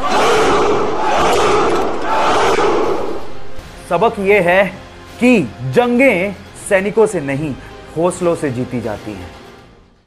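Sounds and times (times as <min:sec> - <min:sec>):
crowd of men shouting: 0:00.0 - 0:03.3.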